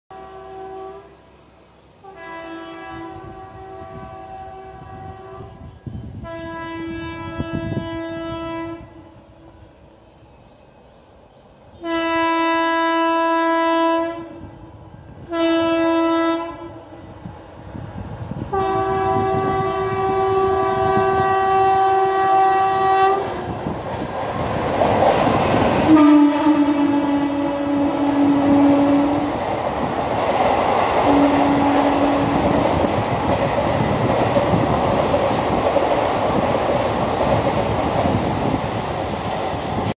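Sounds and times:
train horn blasts: 0.1 - 1.4, 2.0 - 9.5, 11.8 - 17.3, 18.4 - 23.7, 25.8 - 29.5, 30.9 - 33.0
train wheels rumbling and clattering: 17.2 - 39.9.

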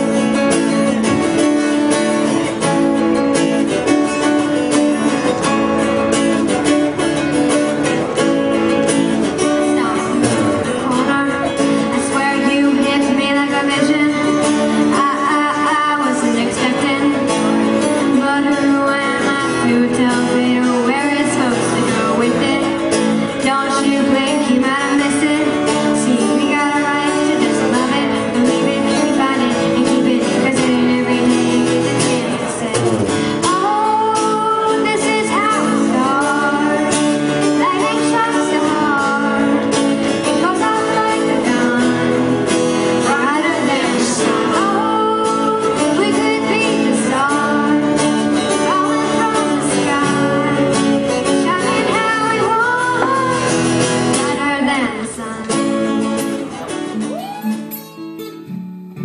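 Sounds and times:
acoustic guitars strumming: 0.0 - 59.0
person singing: 0.0 - 59.0.

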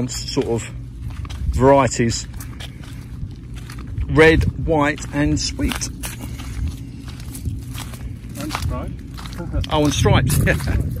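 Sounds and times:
footsteps on dirt path: 0.0 - 11.0
low steady rumble: 0.0 - 11.0.

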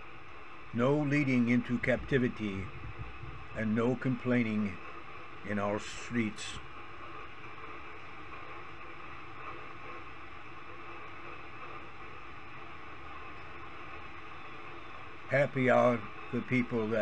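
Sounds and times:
steady hiss: 0.0 - 17.0.

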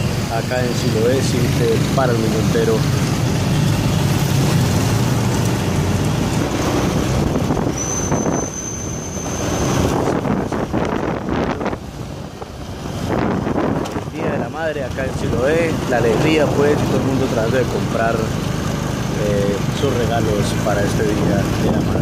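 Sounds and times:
traffic and engine noise: 0.0 - 22.0
wind buffeting microphone: 5.0 - 8.4, 9.7 - 18.0.

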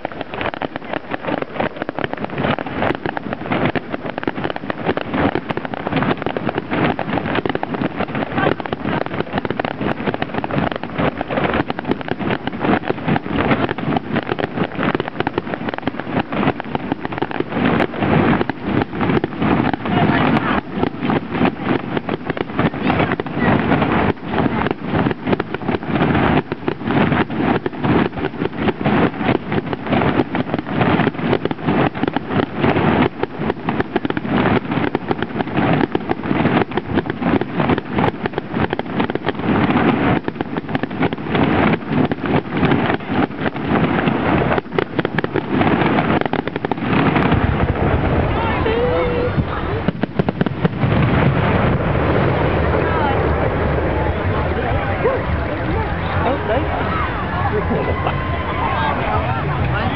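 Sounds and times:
fireworks bangs and crackles: 0.0 - 59.9.

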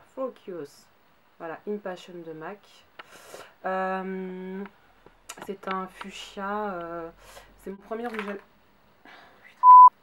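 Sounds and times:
censor bleep: 9.6 - 10.0.

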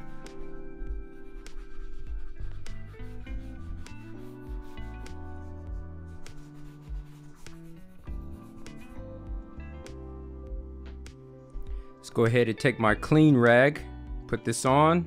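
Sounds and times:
shoe brush rubbing leather: 0.0 - 9.0
background music: 0.0 - 15.0.

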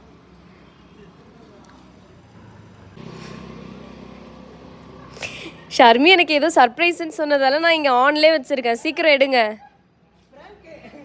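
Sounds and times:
vehicle engine running: 2.2 - 7.6.

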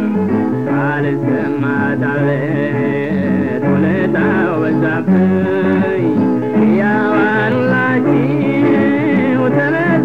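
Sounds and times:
instrumental backing: 0.0 - 10.0
person singing: 0.0 - 10.0.

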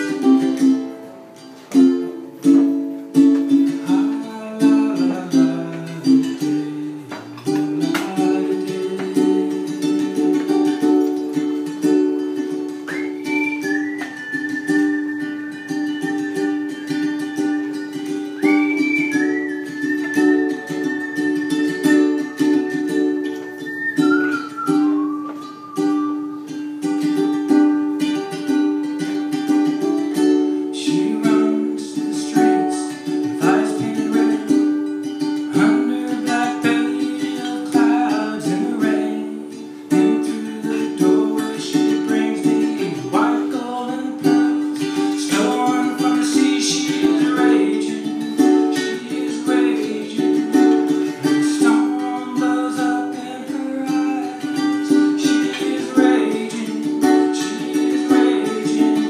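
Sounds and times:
ukulele strumming: 0.0 - 59.0
man singing: 3.5 - 11.8, 30.6 - 59.0.

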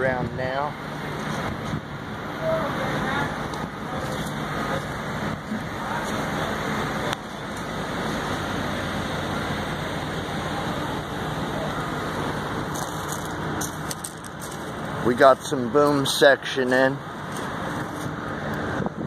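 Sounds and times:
machinery rumbling: 0.0 - 19.0.

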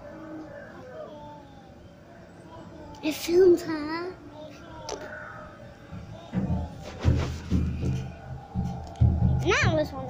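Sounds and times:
faint distant voices: 0.0 - 10.0
low background noise: 0.0 - 10.0.

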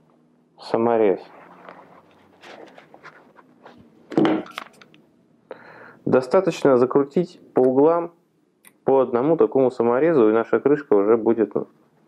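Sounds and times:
thud: 4.1 - 4.5.

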